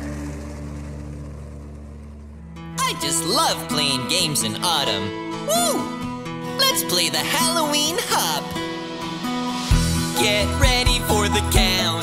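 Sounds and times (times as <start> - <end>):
truck engine idling: 0.0 - 4.7.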